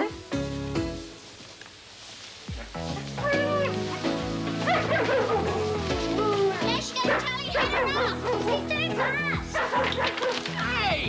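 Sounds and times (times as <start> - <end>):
background music with held notes: 0.0 - 1.4, 2.5 - 11.0.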